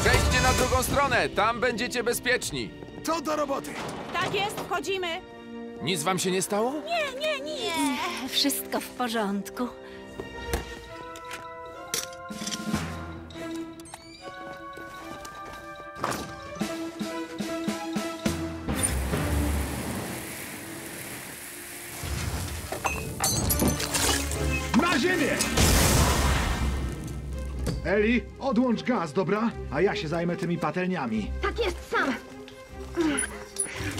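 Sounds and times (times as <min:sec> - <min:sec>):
dramatic cartoon music: 0:00.0 - 0:20.9, 0:21.6 - 0:33.9
water spraying from fire hose: 0:18.8 - 0:23.0.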